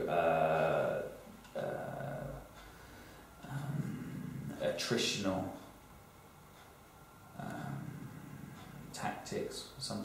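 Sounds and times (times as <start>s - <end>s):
man saying uh: 0.0s - 2.5s, 3.4s - 5.6s, 7.4s - 8.2s.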